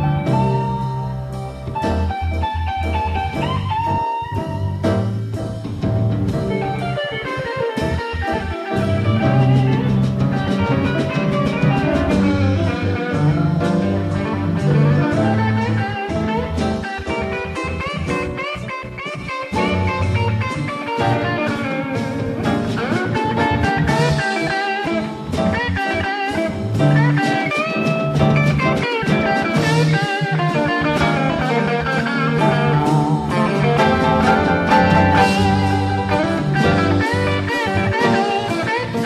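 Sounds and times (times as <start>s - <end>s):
blues band playing: 0.0s - 39.0s.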